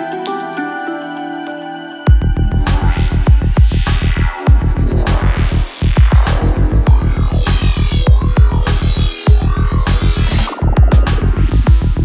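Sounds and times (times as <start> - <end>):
electronic music: 0.0 - 12.0
throbbing bassline: 2.1 - 12.0.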